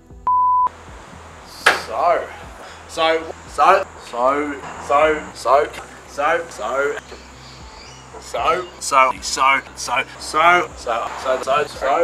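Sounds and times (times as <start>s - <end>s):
electronic bleep: 0.3s - 0.7s
man's voice: 0.8s - 12.0s.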